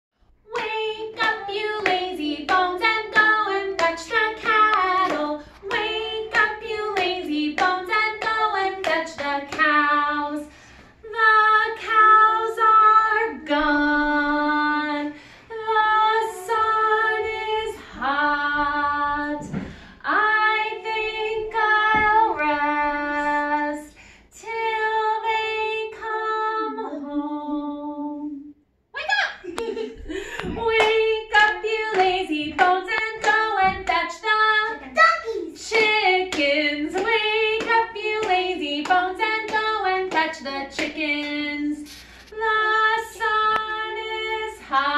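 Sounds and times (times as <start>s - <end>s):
woman singing unaccompanied: 11.1s - 28.4s, 30.5s - 34.8s, 35.6s - 44.9s.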